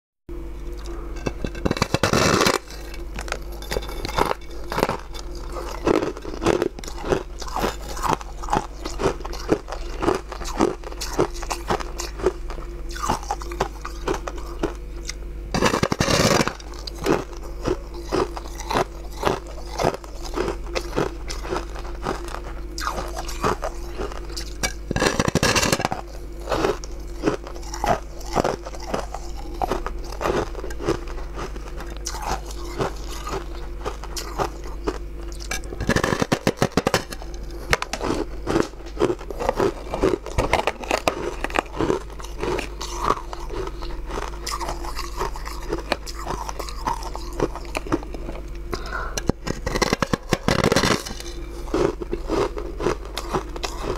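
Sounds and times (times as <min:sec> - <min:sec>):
steady low hum: 0:00.3 - 0:53.9
crunching frozen slab: 0:01.2 - 0:53.9.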